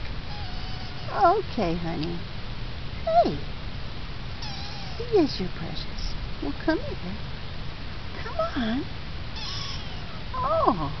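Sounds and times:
kitten meowing: 0.3 - 1.2, 4.4 - 5.1, 9.4 - 10.2.

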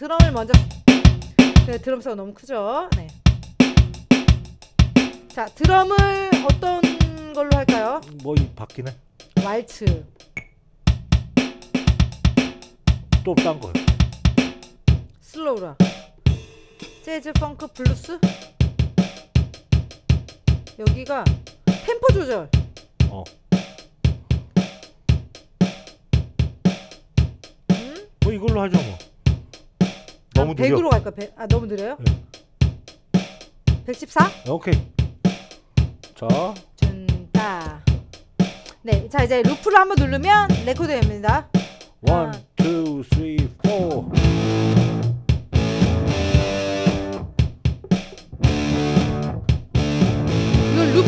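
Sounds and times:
drum machine rock beat: 0.0 - 2.0, 2.9 - 51.0
electric guitar strumming chords: 44.0 - 51.0.

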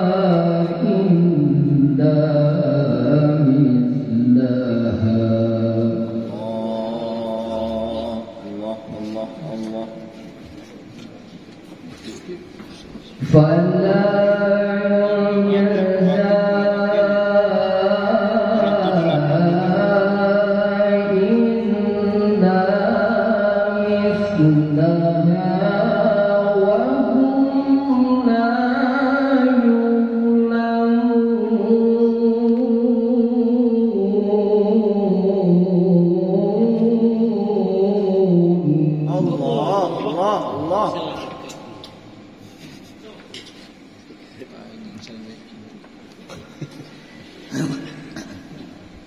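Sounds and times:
man reciting melodically into microphone: 0.0 - 10.8, 13.2 - 42.0.

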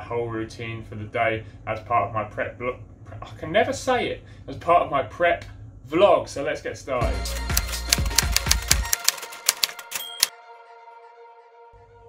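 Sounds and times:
typewriter key clicks: 7.5 - 10.3
typewriter bell ping: 9.0 - 10.3.

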